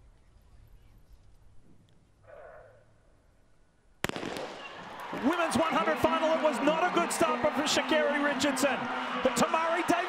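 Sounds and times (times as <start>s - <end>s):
hushed stadium crowd: 4.4s - 10.0s.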